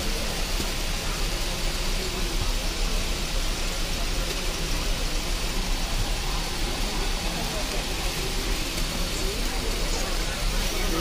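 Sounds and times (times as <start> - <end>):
busy street market hubbub: 0.0 - 11.0.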